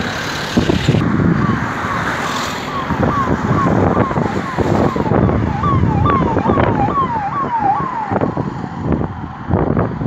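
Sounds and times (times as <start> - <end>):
vehicle siren: 1.0 - 9.3.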